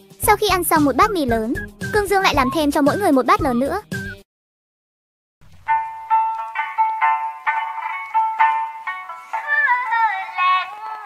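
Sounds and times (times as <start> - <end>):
bright simple melody: 5.7 - 11.0.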